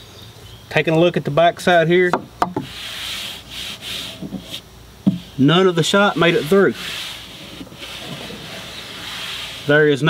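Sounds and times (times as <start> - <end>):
soft rubbing against wooden frame: 2.5 - 10.0.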